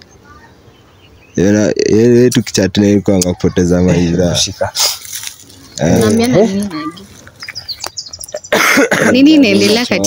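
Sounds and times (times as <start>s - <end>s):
person coughing: 8.5s - 9.3s.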